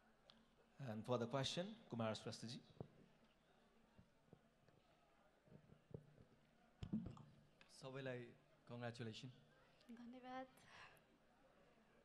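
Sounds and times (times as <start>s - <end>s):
microphone click and thump: 6.8s - 7.4s.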